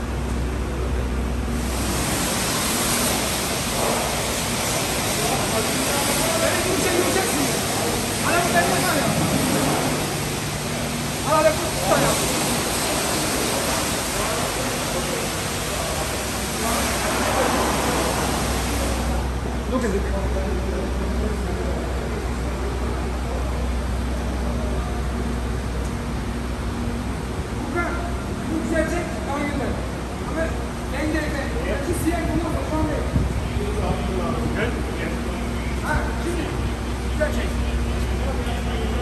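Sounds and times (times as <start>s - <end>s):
car wash equipment hissing: 0.0s - 39.0s.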